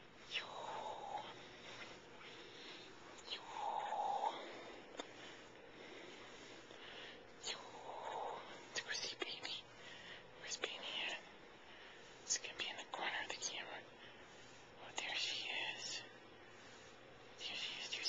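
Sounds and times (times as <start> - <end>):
person whispering: 0.2 - 5.5, 7.4 - 9.8, 10.4 - 11.3, 12.0 - 18.0.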